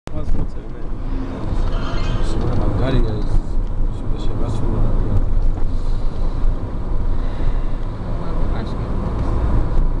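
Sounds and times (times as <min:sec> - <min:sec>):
car road and wind noise: 0:00.1 - 0:10.0.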